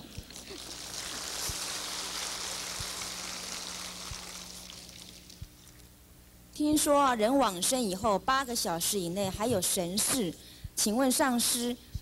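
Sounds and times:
low electrical hum: 0.0s - 12.0s
audience applauding: 0.6s - 4.9s.

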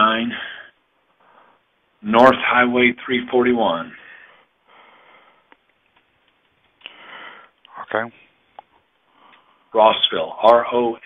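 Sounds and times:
breathy sniff: 6.8s - 7.6s.

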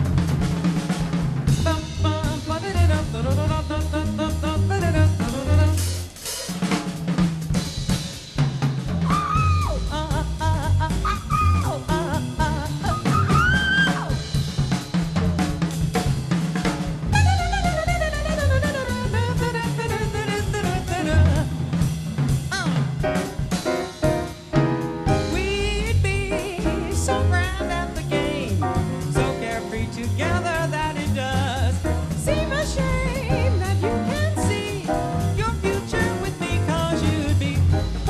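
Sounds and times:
walking upright bass: 0.0s - 6.2s, 8.9s - 38.0s
drum kit: 0.0s - 38.0s
jazz combo playing: 0.0s - 38.0s.

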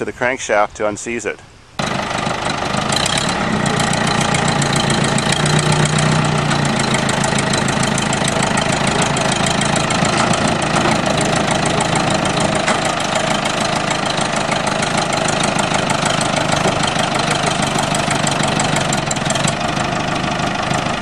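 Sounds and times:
tractor engine running: 1.8s - 21.0s.

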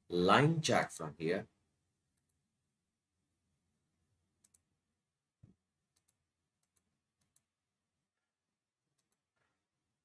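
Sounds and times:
computer mouse clicks: 4.4s - 4.7s, 5.9s - 7.5s, 8.9s - 9.3s.

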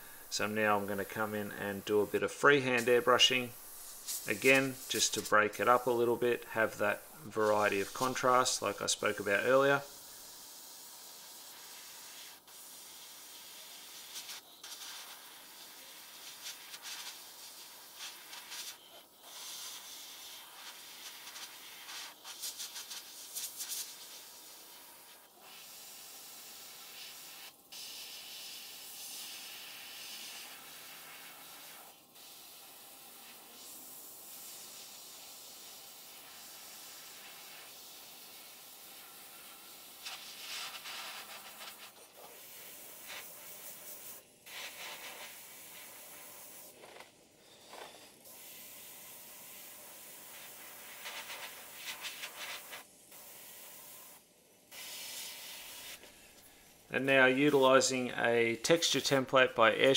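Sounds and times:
airbrush spraying hiss: 0.0s - 46.8s, 47.4s - 59.2s.

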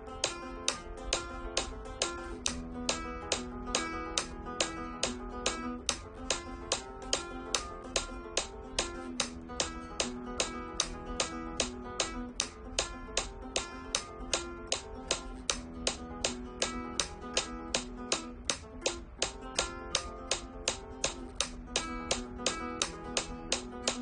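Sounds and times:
fingerstyle guitar arpeggio: 0.0s - 24.0s
metronome clicks: 0.0s - 24.0s.

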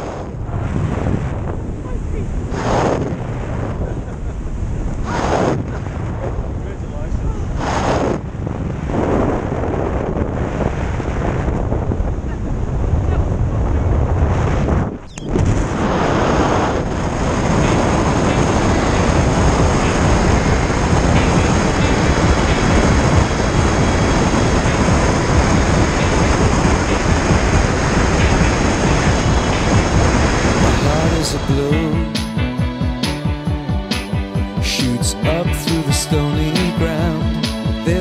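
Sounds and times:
wind buffeting microphone: 0.0s - 35.2s.

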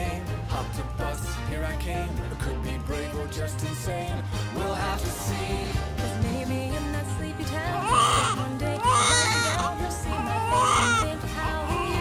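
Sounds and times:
background music: 0.0s - 12.0s
baby crying: 7.6s - 12.0s.

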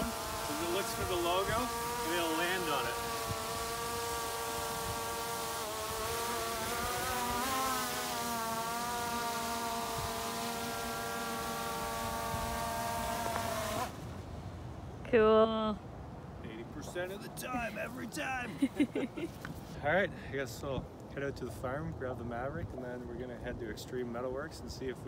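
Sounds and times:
drone propellers whining: 0.0s - 14.0s.

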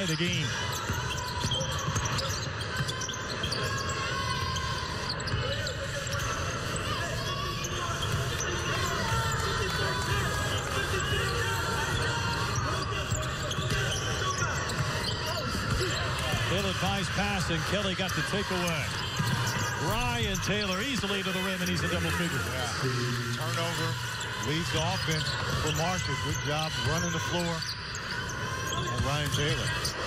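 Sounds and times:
crowd chatter murmur: 0.0s - 30.0s.

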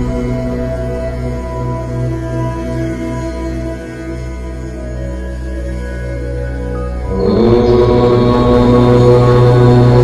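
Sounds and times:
ambient music drone: 0.0s - 10.0s
low chanted tone: 0.0s - 10.0s.

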